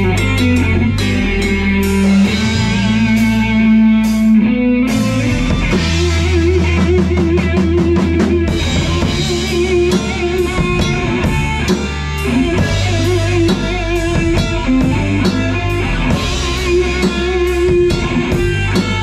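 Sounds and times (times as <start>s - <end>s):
drum kit beat: 0.0s - 19.0s
rock band playing: 0.0s - 19.0s.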